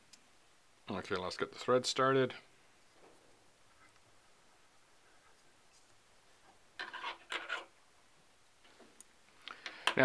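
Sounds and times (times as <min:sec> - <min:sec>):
thread scratching on metal tube: 0:06.8 - 0:07.8.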